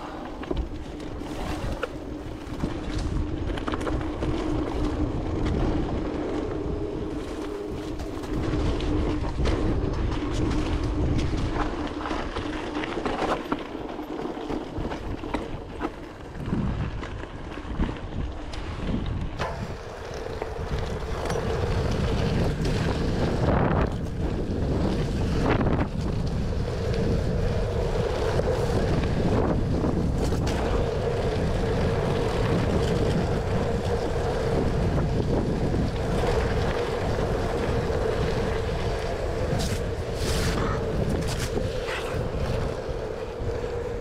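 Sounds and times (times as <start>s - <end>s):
bike tyres rolling on gravel: 0.0s - 44.0s
wind buffeting microphone: 0.0s - 44.0s.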